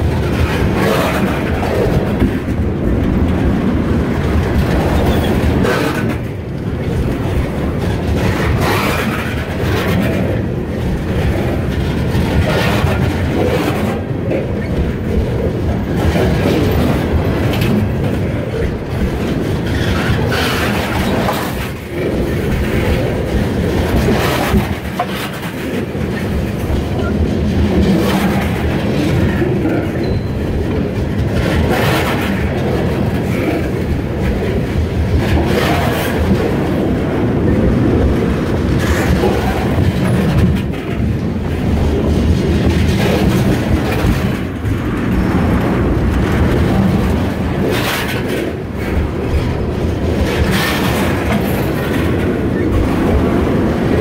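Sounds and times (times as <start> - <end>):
steel wheels rumbling on rail: 0.0 - 54.0
wheels clacking on rail joints: 0.0 - 54.0.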